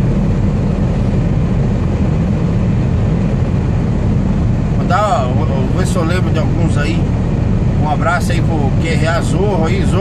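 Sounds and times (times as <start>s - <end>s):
road noise: 0.0s - 10.0s
truck engine drone: 0.0s - 10.0s.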